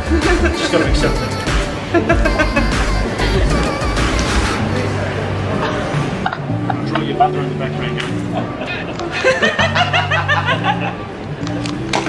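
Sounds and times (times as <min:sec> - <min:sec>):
woman laughing hard: 0:00.0 - 0:04.1, 0:08.4 - 0:11.0
background music: 0:00.0 - 0:12.0.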